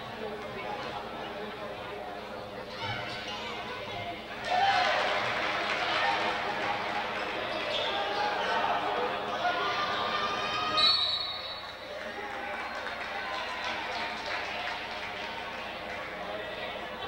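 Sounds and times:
crowd chatter: 0.0s - 17.0s
referee's whistle: 10.7s - 11.9s.

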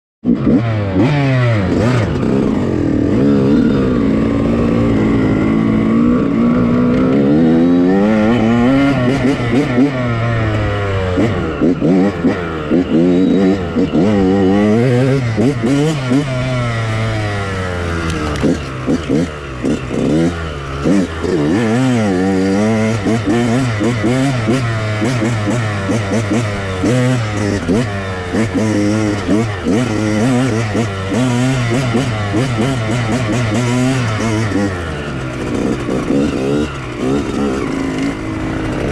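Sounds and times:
dirt bike engine revving: 0.2s - 38.9s.

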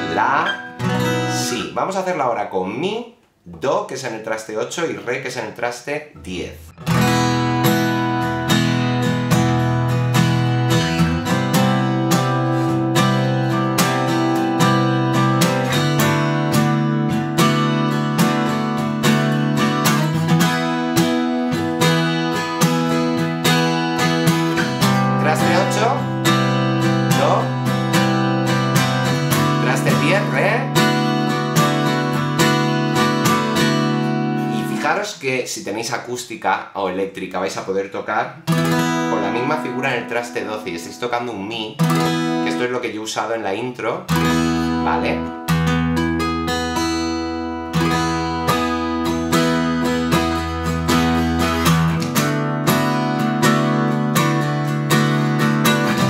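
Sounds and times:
acoustic guitar strumming: 0.0s - 1.8s, 6.2s - 35.1s, 38.4s - 43.0s, 43.8s - 56.0s
guitar string slides: 0.3s - 1.3s.

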